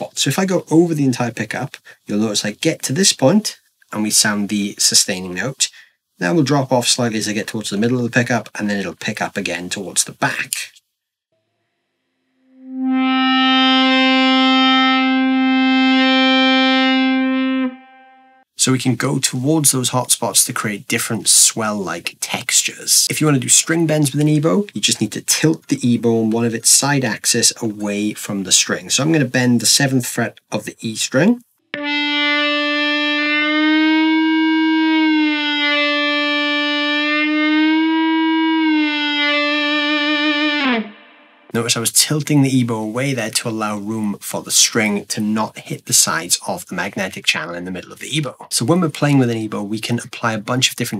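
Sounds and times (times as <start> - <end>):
sustained electric guitar note: 12.4 - 18.4, 31.8 - 41.5.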